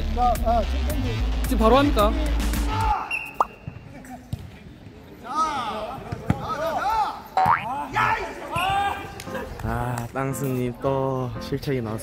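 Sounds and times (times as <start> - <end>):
ball being kicked: 7.4 - 7.7.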